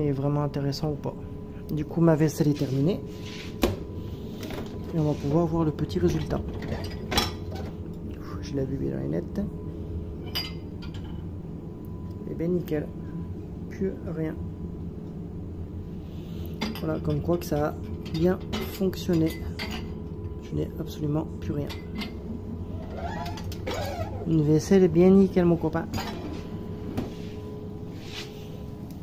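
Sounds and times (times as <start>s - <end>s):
low machine hum: 0.0s - 29.0s.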